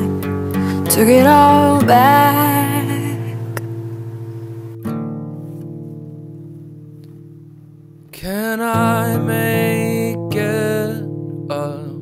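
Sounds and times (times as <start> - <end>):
guitar chord ringing: 0.0 - 12.0.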